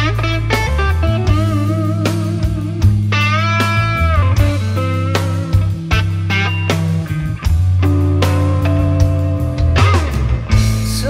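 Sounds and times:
electric guitar lead with vibrato: 0.0 - 11.0
low bass line: 0.0 - 11.0.

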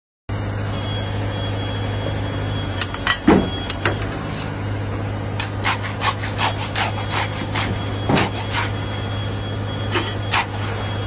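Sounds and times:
concrete mixer engine hum: 0.3 - 11.0.

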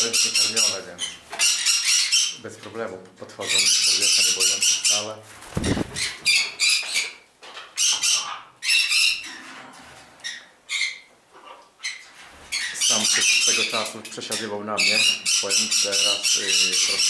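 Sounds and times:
parrots screeching: 0.2 - 2.4, 5.6 - 7.2, 7.8 - 9.4, 10.2 - 13.8.

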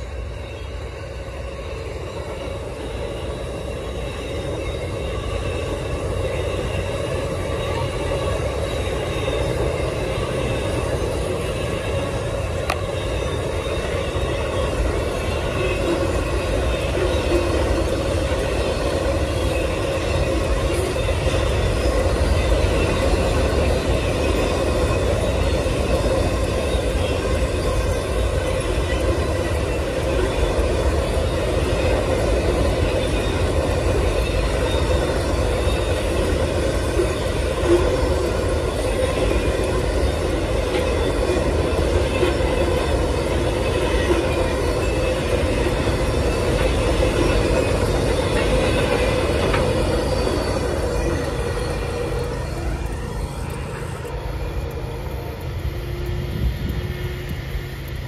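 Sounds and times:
steel wheels rumbling on rail: 0.0 - 58.0.

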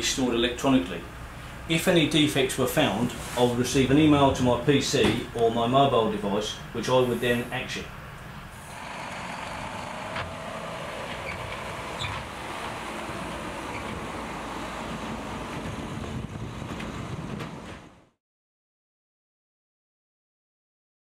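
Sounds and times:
road noise: 0.0 - 18.2
diesel lorry engine passing: 6.5 - 18.1.

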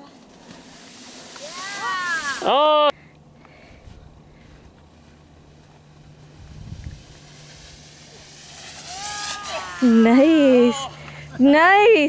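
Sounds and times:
outdoor background hiss: 0.0 - 12.0
person exclaiming: 1.4 - 2.9, 8.9 - 11.0
steady low hum: 2.2 - 12.0
low rumble on microphone: 3.6 - 8.4.

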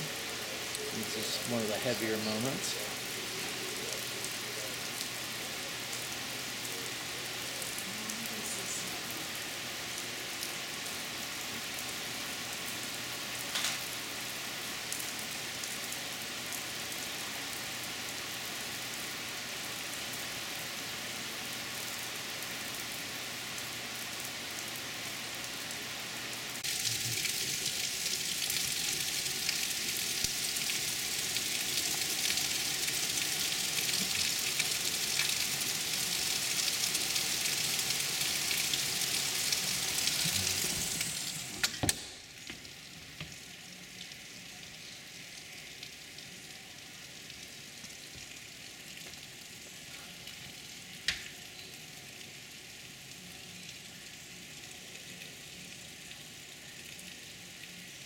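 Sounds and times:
heavy rain hissing: 0.0 - 42.4.

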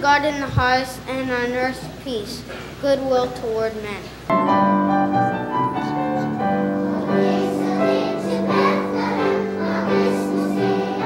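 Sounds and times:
children's choir singing: 5.5 - 11.0.

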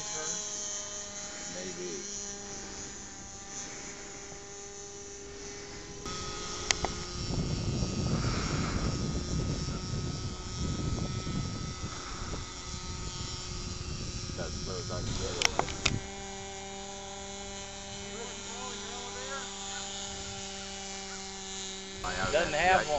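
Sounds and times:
model aircraft motor whining: 0.0 - 22.9
sharp click: 15.3 - 16.0.

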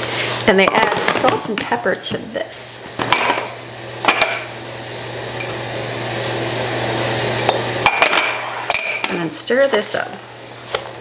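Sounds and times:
spoon scraping steel bowl: 4.1 - 7.6.

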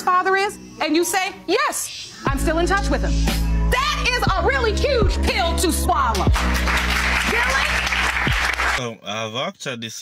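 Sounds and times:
background music: 0.0 - 8.9
audience applauding: 6.1 - 8.8
man speaking: 8.8 - 10.0.

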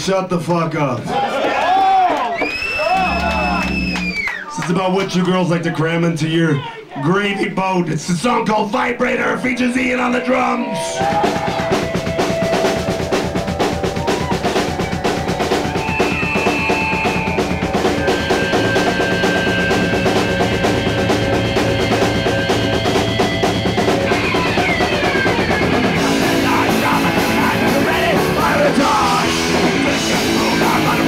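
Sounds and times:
punk rock band playing: 2.8 - 4.3, 8.6 - 31.0
fast steady drumming: 9.8 - 31.0.

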